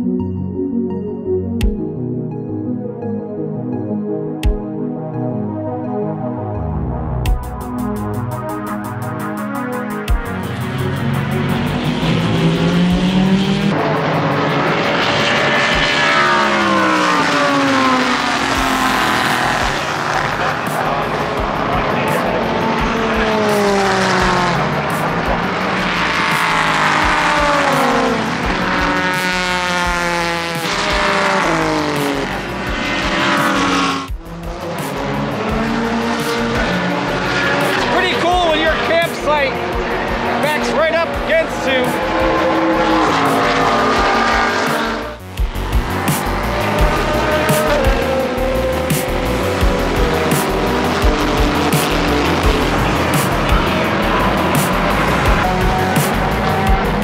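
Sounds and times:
race cars passing: 7.8 - 57.0.

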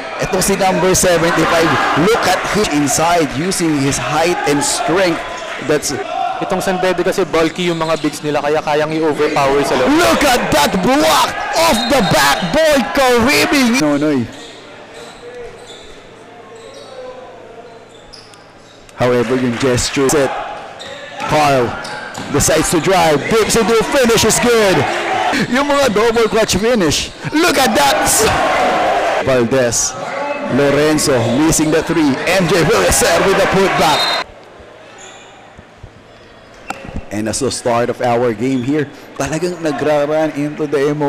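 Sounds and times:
faint voices echoing in hall: 0.0 - 41.0.

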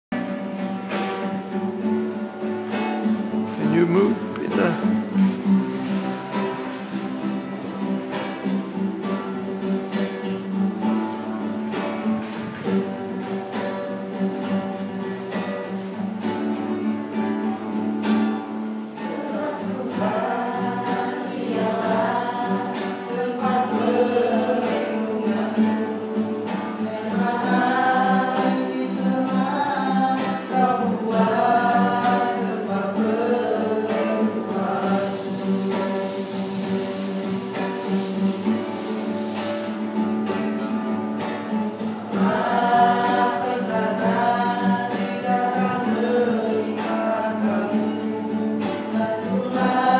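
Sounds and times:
strummed classical guitar: 0.1 - 49.9
group of young voices singing: 18.3 - 37.9, 41.5 - 49.9.

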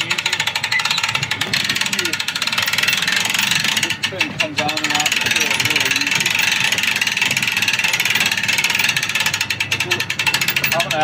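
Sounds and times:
winch ratchet clicking: 0.0 - 11.0.

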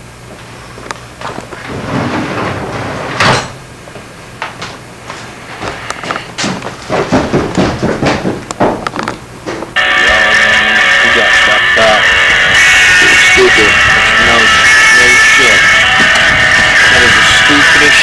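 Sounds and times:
knocks bangs and clatters: 6.3 - 9.7.

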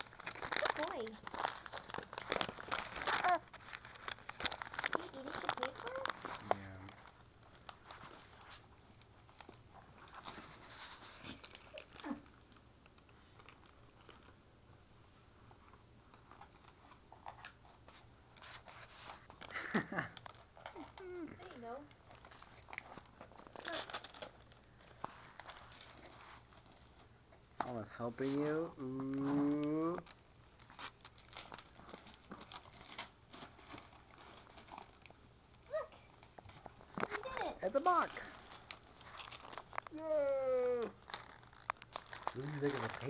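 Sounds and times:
wrapping paper crinkling: 0.0 - 14.4, 15.4 - 27.1, 27.7 - 43.0
paper tearing: 22.7 - 24.5.

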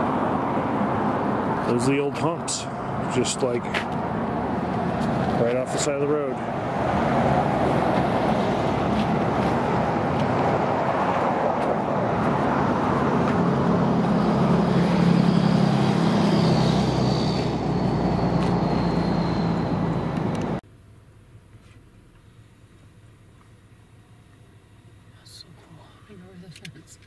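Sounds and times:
vehicle passing by: 0.0 - 20.6.

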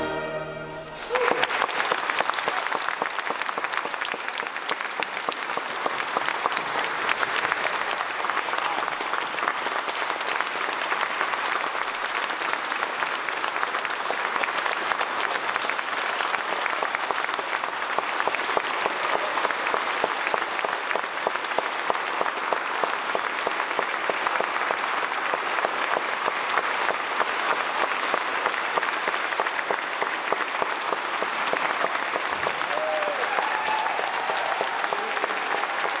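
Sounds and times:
crowd applauding: 0.8 - 36.0.

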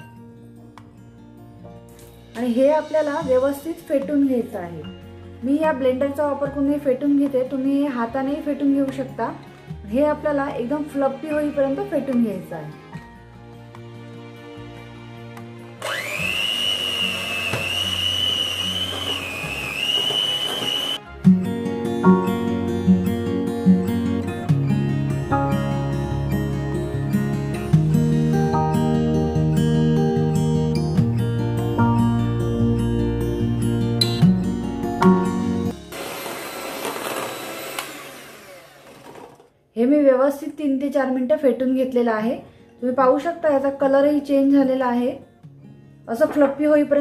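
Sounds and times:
soft background music: 0.0 - 17.5, 21.0 - 36.0, 39.8 - 47.0
electric hand mixer whining: 15.8 - 21.0, 35.7 - 39.5.

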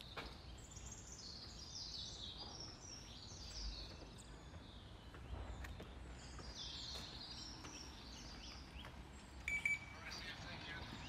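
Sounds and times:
birds chirping and singing: 0.0 - 11.0
low outdoor background hum: 0.0 - 11.0.

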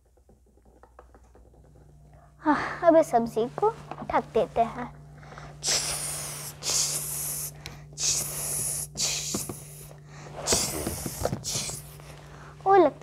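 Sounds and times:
steady low hum: 0.0 - 13.0
person breathy hissing: 5.2 - 12.6.

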